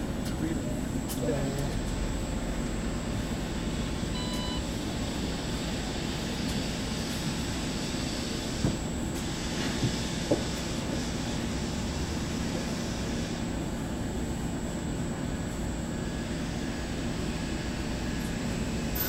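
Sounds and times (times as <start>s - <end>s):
bus engine idling: 0.0s - 19.0s
short electronic beep: 4.1s - 4.6s.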